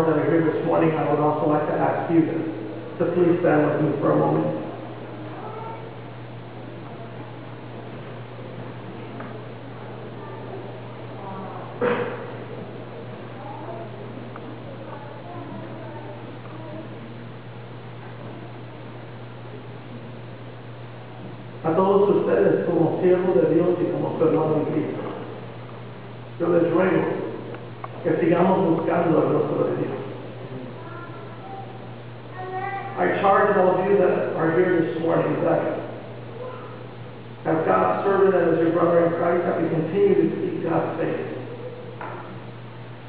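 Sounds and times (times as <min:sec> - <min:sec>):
man talking through microphone: 0:00.0 - 0:04.8, 0:21.6 - 0:25.2, 0:26.4 - 0:30.8, 0:33.0 - 0:36.0, 0:37.4 - 0:41.5
electrical hum: 0:00.0 - 0:43.0.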